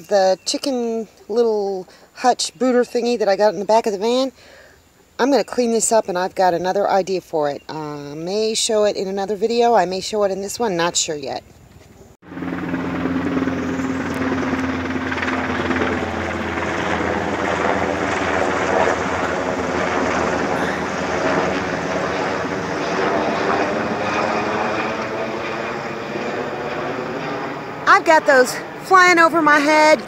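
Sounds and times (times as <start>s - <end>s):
helicopter rotor beating: 12.2s - 30.0s.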